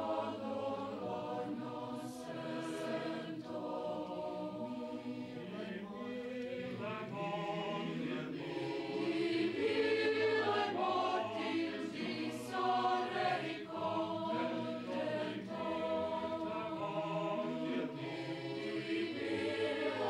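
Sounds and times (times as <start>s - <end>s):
group singing held notes: 0.0s - 20.0s.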